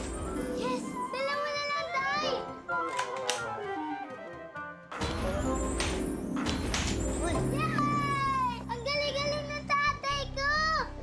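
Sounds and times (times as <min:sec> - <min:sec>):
background music with low held notes: 0:00.0 - 0:11.0
children shouting and cheering: 0:07.2 - 0:11.0.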